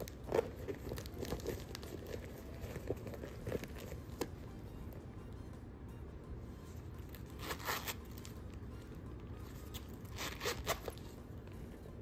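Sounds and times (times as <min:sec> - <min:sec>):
metal zipper being pulled shut: 0:10.1 - 0:11.0.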